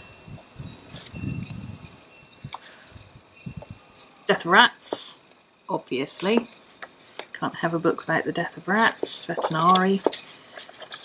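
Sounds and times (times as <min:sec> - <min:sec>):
faint high ringing tones: 0:00.0 - 0:06.8
paper pages turning: 0:09.3 - 0:11.0.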